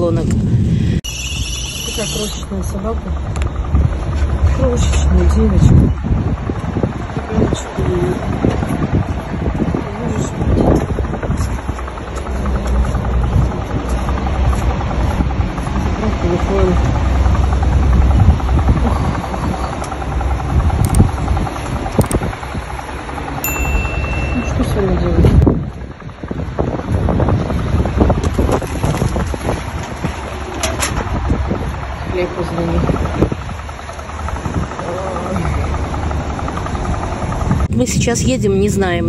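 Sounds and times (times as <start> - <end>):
vehicle engine rumbling: 0.0 - 39.0
indistinct voices: 1.6 - 6.0, 15.5 - 20.8, 32.0 - 39.0
short beep: 23.4 - 24.6.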